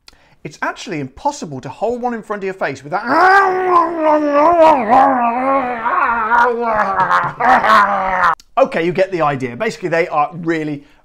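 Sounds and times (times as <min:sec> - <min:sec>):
man vocalizing wordlessly: 0:03.0 - 0:08.4.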